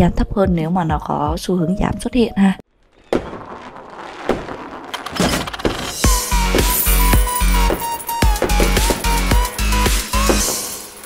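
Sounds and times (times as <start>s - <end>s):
fireworks banging: 2.7s - 11.0s.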